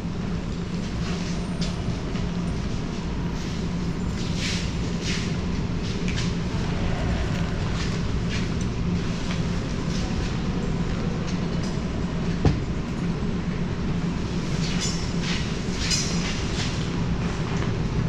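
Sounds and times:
low mechanical drone: 0.0s - 18.0s.

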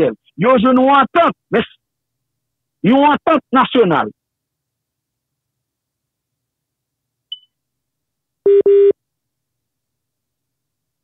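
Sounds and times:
telephone line beeps: 8.5s - 9.0s.

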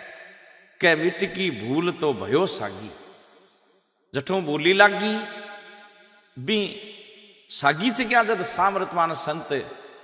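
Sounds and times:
man chanting: 0.8s - 3.0s, 6.4s - 6.8s, 7.5s - 9.7s.

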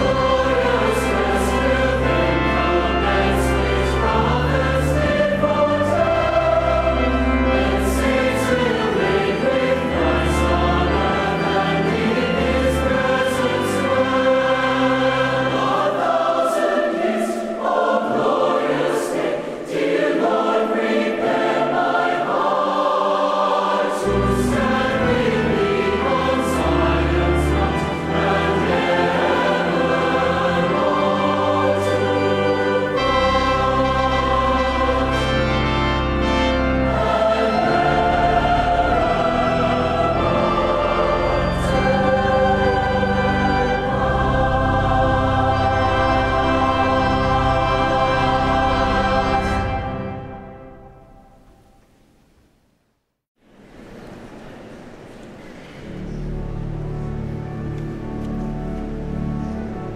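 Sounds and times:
choir singing sustained chords: 0.0s - 52.3s, 53.5s - 59.9s.

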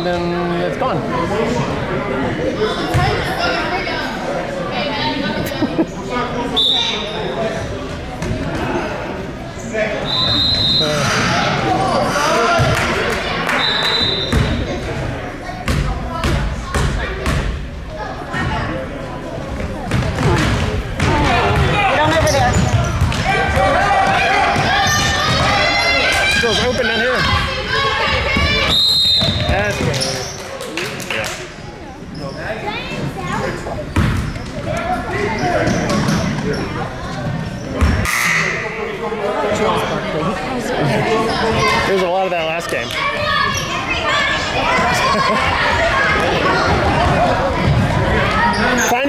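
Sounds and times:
referee whistle blast: 10.1s - 11.1s, 13.5s - 14.5s, 28.7s - 29.4s
people shouting and cheering: 21.0s - 30.3s, 42.7s - 49.0s.

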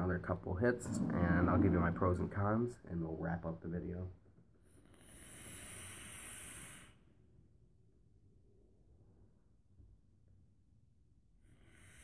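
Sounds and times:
vape hissing: 5.0s - 7.0s.

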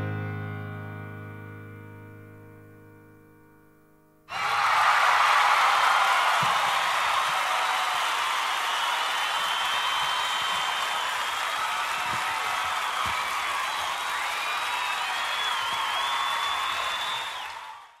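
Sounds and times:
crowd cheering and applauding: 4.3s - 18.0s
whoops: 4.3s - 18.0s
whistles: 6.1s - 18.0s.

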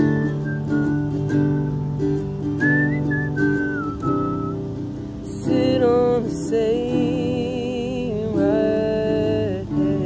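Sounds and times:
whistled melody: 0.0s - 4.8s
acoustic guitar strummed chords: 0.0s - 10.0s.

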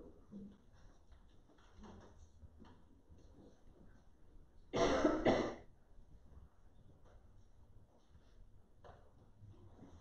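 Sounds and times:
person clearing throat: 4.7s - 5.7s.

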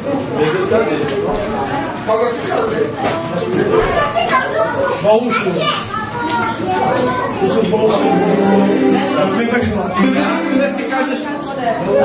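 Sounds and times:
adults talking: 0.0s - 12.0s
children talking: 0.0s - 12.0s.

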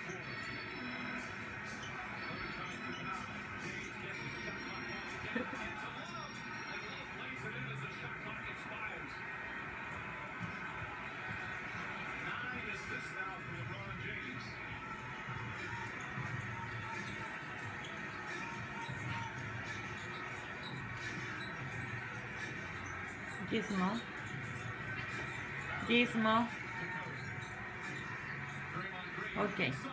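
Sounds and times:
indistinct television speech: 0.0s - 29.9s
television music: 0.0s - 29.9s.

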